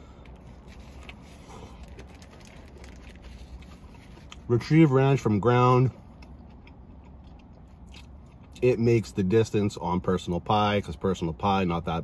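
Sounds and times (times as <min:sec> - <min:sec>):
low steady hum: 0:00.0 - 0:12.0
chewing food: 0:00.2 - 0:04.7, 0:05.8 - 0:08.6.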